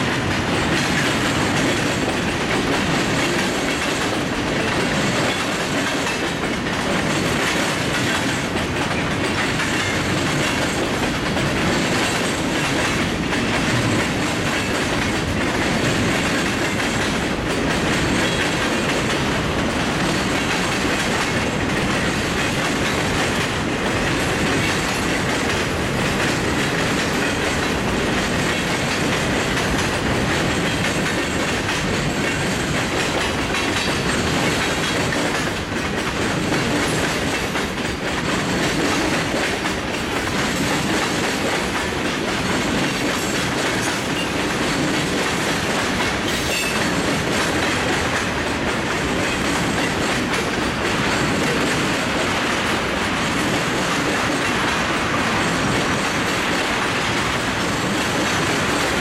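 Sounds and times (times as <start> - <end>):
freight train wheels on rails: 0.0 - 59.0.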